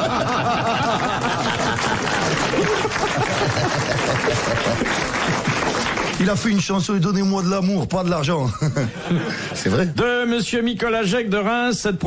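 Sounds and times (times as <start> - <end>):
audience laughing: 0.0 - 6.0, 8.4 - 9.9.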